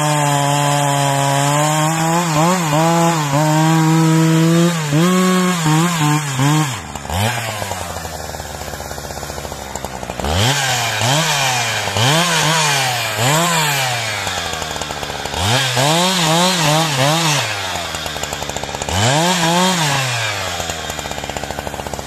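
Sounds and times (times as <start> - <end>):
chainsaw cutting log: 0.0 - 22.0.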